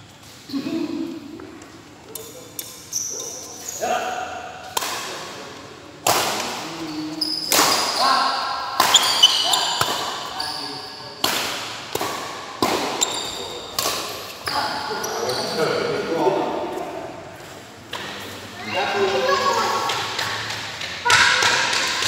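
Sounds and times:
shoes squeaking on court: 2.2 - 3.9, 6.9 - 8.2, 8.8 - 11.0, 12.8 - 15.8
rackets smacking shuttlecock: 4.6 - 5.4, 6.0 - 6.6, 7.4 - 8.0, 8.7 - 10.4, 11.2 - 14.6.

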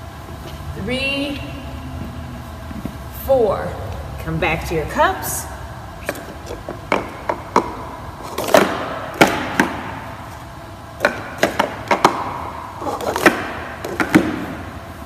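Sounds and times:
plastic cups clacking: 11.0 - 14.5.

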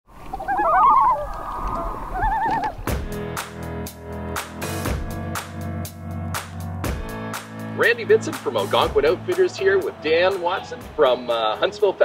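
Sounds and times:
quavering animal call: 0.3 - 2.8
music with drum beat: 2.9 - 12.0.

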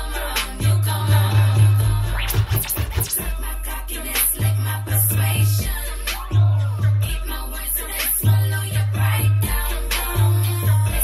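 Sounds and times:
dj scratching: 0.0 - 11.0
hip hop music: 0.0 - 11.0.

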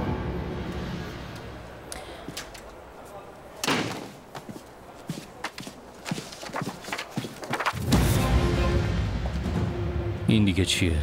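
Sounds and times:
footsteps on hard floor: 3.9 - 7.8.

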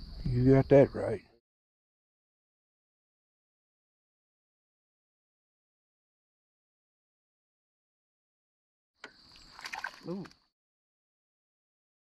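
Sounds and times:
fish splashing and flopping: 9.1 - 10.4.

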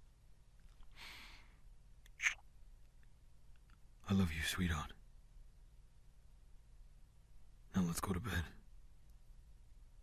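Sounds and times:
short loud breath: 1.0 - 1.6.

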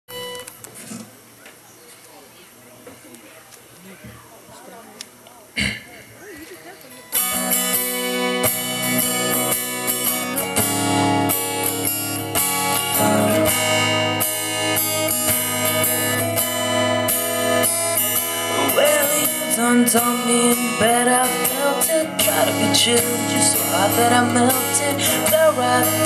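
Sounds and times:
acoustic guitar strumming chords: 0.1 - 0.5, 7.1 - 26.0.

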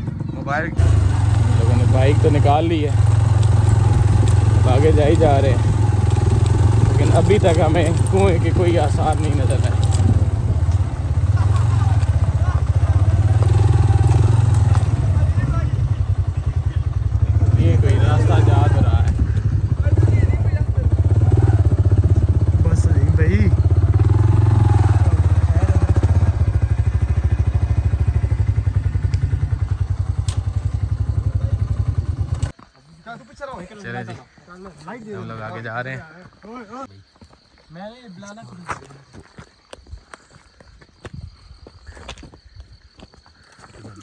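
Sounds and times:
motorcycle engine running: 0.0 - 32.5.

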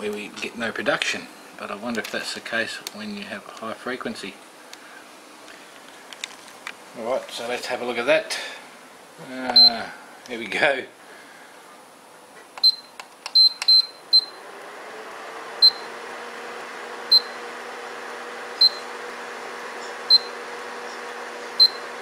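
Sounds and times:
hob beeping: 9.5 - 9.8, 12.6 - 14.5, 15.6 - 16.0, 17.1 - 17.5, 18.6 - 19.0, 20.0 - 20.4, 21.0 - 22.0
button-press beeps with clicks: 9.6 - 9.8, 12.6 - 14.4, 15.6 - 15.9, 21.6 - 21.8.

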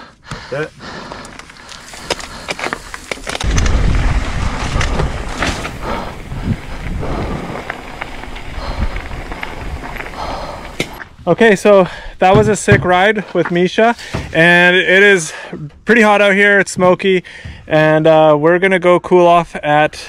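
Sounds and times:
bike clicking and rattling: 0.3 - 11.2
bike tyres crunching on gravel: 0.9 - 14.0
low rumble: 2.2 - 11.4.

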